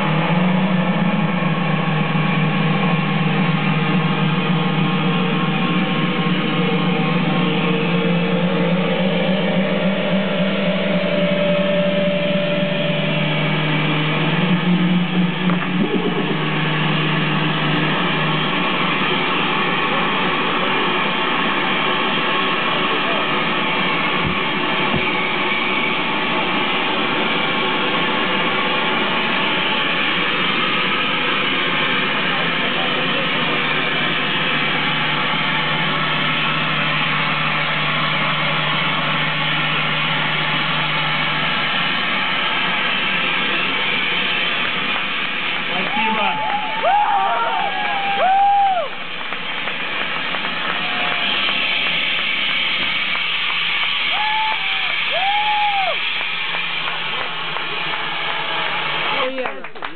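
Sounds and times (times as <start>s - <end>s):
held guitar-like tones: 0.0s - 48.5s
hiss-like drone: 0.0s - 59.4s
live band amplified noise: 0.0s - 59.9s.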